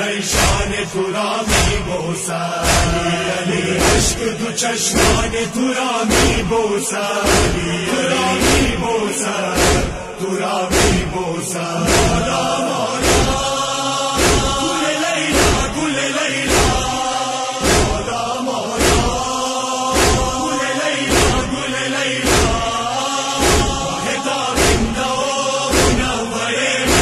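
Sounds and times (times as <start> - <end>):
men's chorus chanting: 0.0 - 27.0
hands striking chests: 1.5 - 1.8, 2.6 - 3.0, 3.8 - 4.2, 5.0 - 5.3, 6.1 - 6.5, 7.2 - 7.7, 8.4 - 8.8, 9.6 - 10.0, 10.7 - 11.1, 11.8 - 12.4, 13.0 - 13.5, 14.2 - 14.6, 15.4 - 15.8, 16.5 - 17.0, 17.6 - 18.1, 18.8 - 19.2, 20.0 - 20.4, 21.1 - 21.5, 22.2 - 22.7, 23.4 - 23.9, 24.6 - 25.0, 25.7 - 26.1.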